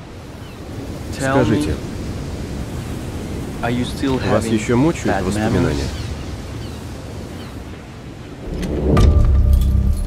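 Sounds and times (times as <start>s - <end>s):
surf on seashore: 0.0s - 8.9s
wind: 0.0s - 10.0s.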